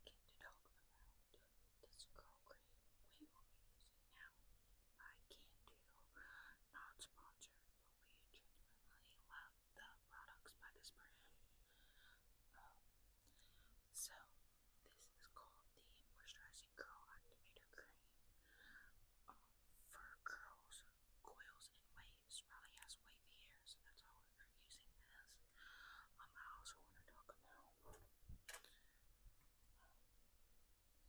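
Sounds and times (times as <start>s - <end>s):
woman whispering: 0.0s - 4.4s, 5.0s - 28.0s, 29.8s - 30.0s.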